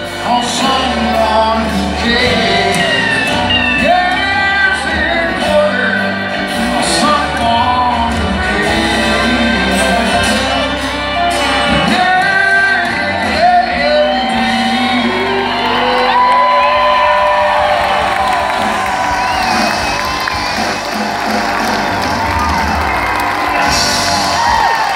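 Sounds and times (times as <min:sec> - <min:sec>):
crowd cheering: 0:00.0 - 0:24.9
live country band with singing: 0:00.0 - 0:24.9
crowd whoops and shouts: 0:01.4 - 0:05.7, 0:13.1 - 0:24.9.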